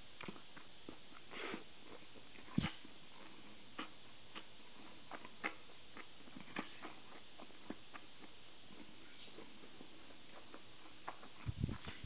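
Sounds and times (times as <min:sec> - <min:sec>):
faint chewing clicks: 0:00.2 - 0:12.0.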